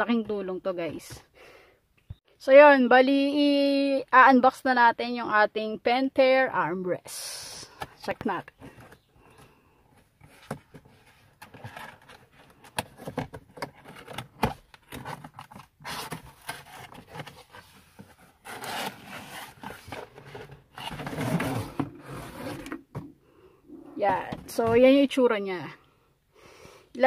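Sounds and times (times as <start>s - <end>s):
cardboard box scraping and rustling: 10.1s - 23.2s.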